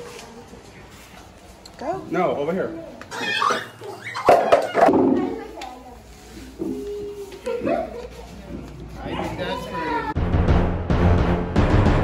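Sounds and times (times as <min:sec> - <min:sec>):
people and children talking: 0:01.6 - 0:10.2.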